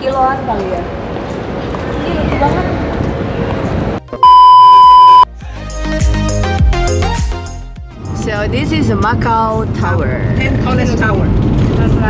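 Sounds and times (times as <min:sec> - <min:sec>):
outdoor background noise: 0:00.0 - 0:05.2
high test-tone beep: 0:04.2 - 0:05.3.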